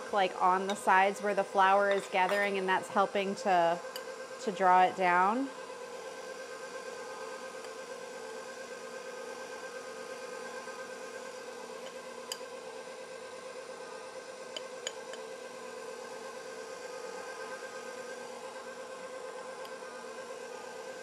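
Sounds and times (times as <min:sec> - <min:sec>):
stand mixer motor whining: 0:00.0 - 0:21.0.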